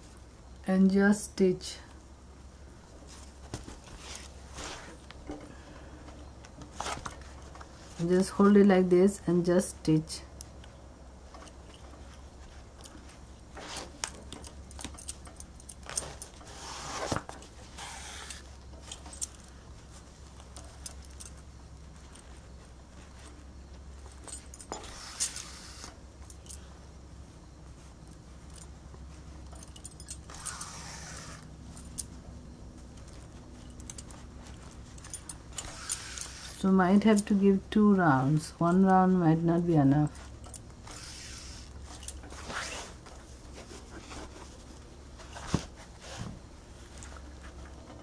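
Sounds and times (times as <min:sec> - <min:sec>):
cloth and thread rustling: 0:01.8 - 0:48.0
bangles clinking: 0:28.0 - 0:37.4.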